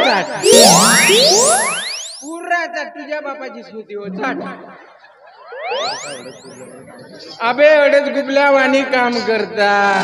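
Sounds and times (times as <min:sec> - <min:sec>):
rising pitch sweeps: 0:00.3 - 0:02.4, 0:05.3 - 0:07.2
thin high tone: 0:00.4 - 0:02.4, 0:05.6 - 0:07.2.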